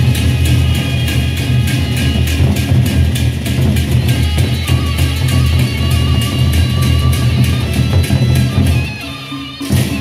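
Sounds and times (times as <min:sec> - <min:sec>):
barrel drums beating: 0:00.0 - 0:10.0
hand cymbals clashing: 0:00.0 - 0:10.0.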